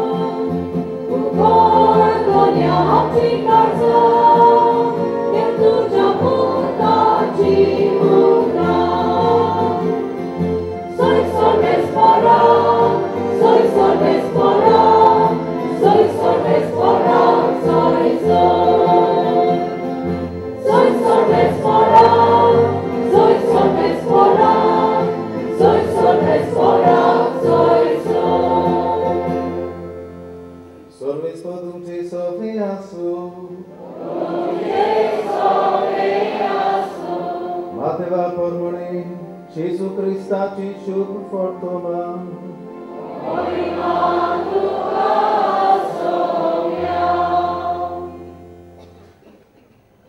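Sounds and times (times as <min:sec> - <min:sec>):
low instrumental accompaniment: 0:00.0 - 0:30.9
choir singing a hymn: 0:00.0 - 0:49.0.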